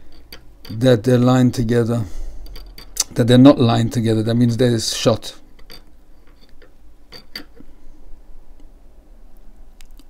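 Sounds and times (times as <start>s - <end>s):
small metallic clicks: 0.0s - 0.9s, 2.4s - 3.2s.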